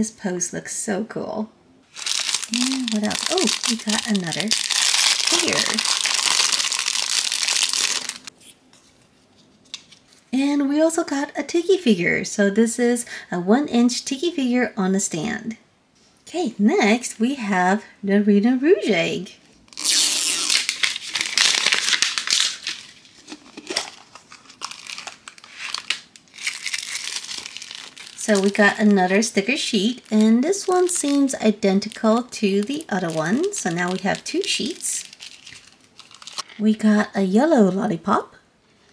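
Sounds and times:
plastic bag crinkling: 1.9s - 8.4s, 19.7s - 36.6s.

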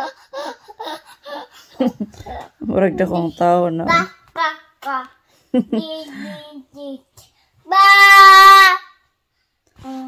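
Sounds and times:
toddler sing-song sounds: 5.9s - 9.1s, 9.8s - 10.0s.

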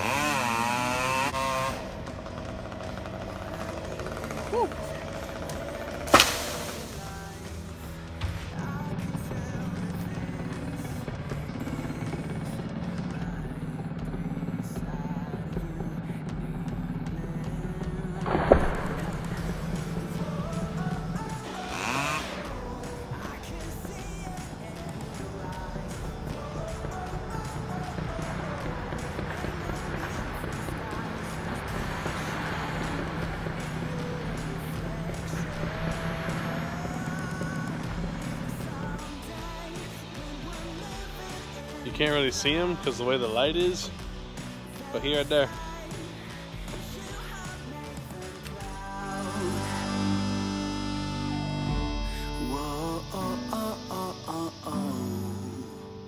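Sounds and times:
chainsaw revving: 0.0s - 56.0s
sharp loud impacts: 5.9s - 7.6s.

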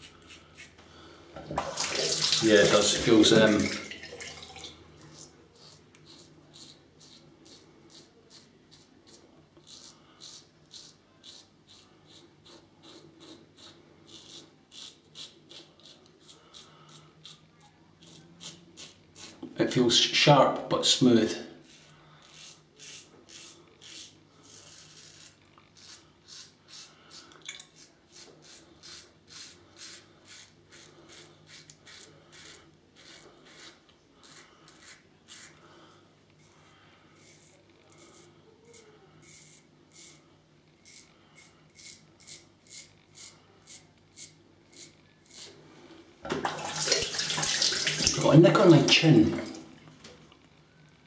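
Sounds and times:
water tap running: 1.4s - 4.8s, 46.3s - 49.8s
razor rasping on stubble: 5.6s - 17.4s, 21.6s - 27.2s, 27.8s - 35.6s, 36.4s - 40.2s, 40.8s - 45.6s.

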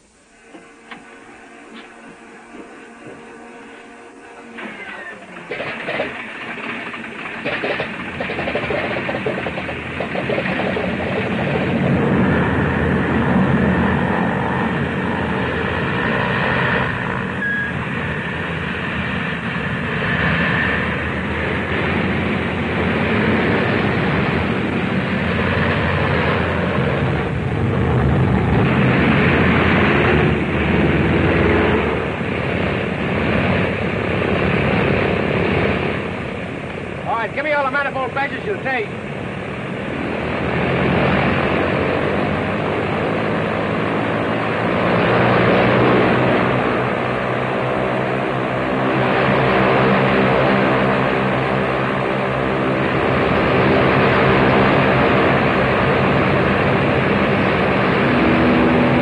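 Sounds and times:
propeller aircraft engines: 0.0s - 59.0s.

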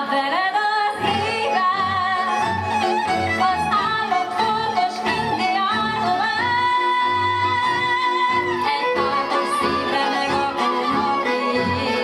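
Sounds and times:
woman singing: 0.0s - 12.0s
double bass: 1.0s - 12.0s
fiddles playing: 1.0s - 12.0s.

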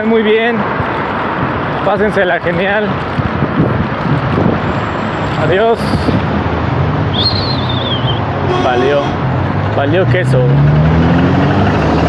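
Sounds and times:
passing cars: 0.0s - 12.0s
wind rushing over microphone: 0.4s - 12.0s.

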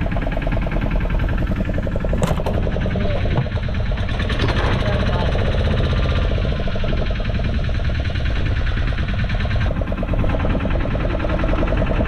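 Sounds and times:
boat engine chugging: 0.0s - 12.0s.

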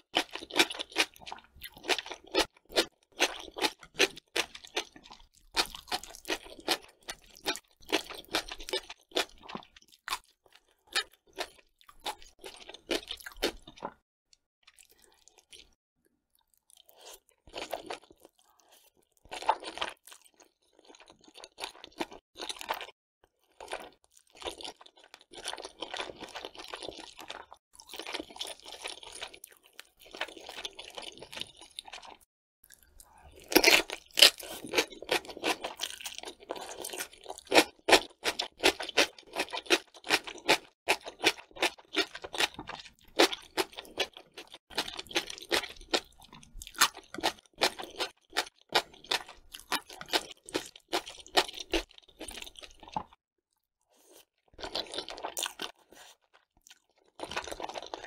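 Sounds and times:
chewing crisp food: 0.0s - 58.0s.

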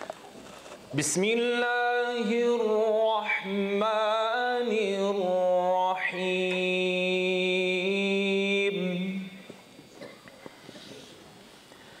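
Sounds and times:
man reciting melodically: 0.9s - 9.6s.

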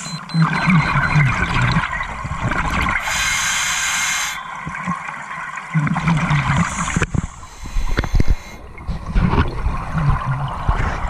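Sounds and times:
exhaled bubbles gurgling: 0.3s - 11.0s
regulator inhale hiss: 3.0s - 4.4s, 6.7s - 8.6s.

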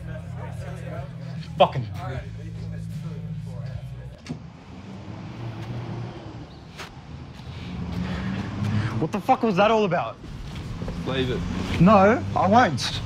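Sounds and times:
street traffic: 0.0s - 13.0s
car engine passing by: 4.1s - 13.0s.

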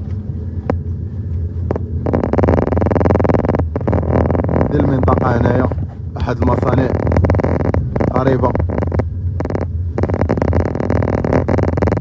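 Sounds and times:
low street rumble: 0.0s - 12.0s
rapid buzzing rattle: 0.5s - 12.0s.

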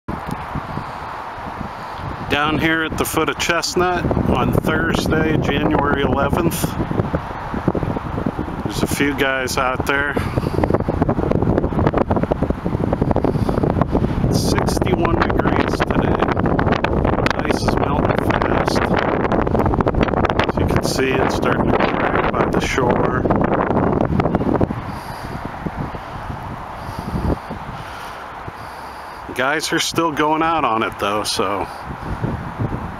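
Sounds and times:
wind buffeting microphone: 0.1s - 32.9s.

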